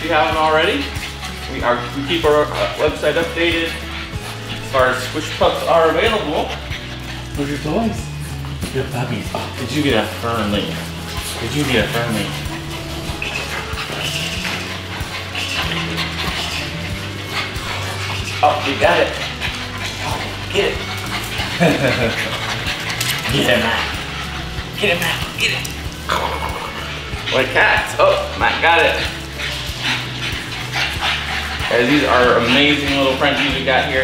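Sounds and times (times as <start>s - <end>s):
background music: 0.0s - 34.0s
puppy whining: 0.0s - 34.0s.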